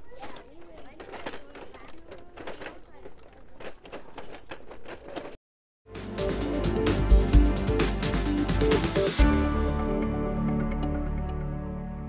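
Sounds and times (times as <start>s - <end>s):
children chattering: 0.0s - 5.4s.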